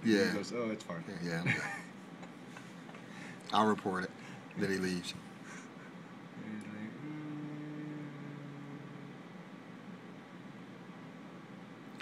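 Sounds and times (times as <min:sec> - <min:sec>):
low steady hum: 0:00.0 - 0:12.0
room background hiss: 0:00.0 - 0:12.0.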